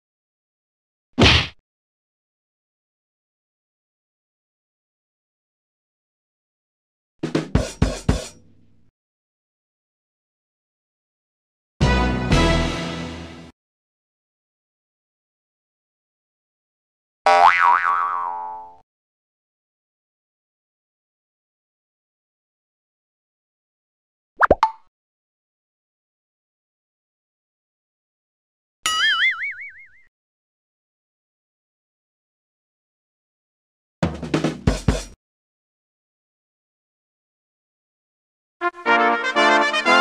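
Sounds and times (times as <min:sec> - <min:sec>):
cartoon boing sound effect: 0:17.3 - 0:18.8, 0:28.9 - 0:30.1.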